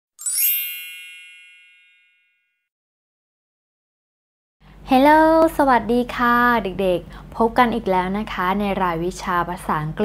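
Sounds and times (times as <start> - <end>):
shimmering chime: 0.2 - 2.6.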